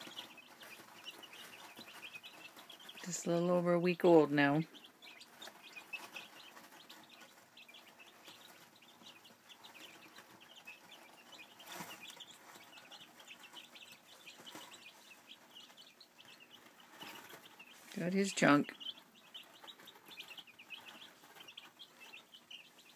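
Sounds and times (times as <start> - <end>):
chicks peeping: 0.0 - 22.9.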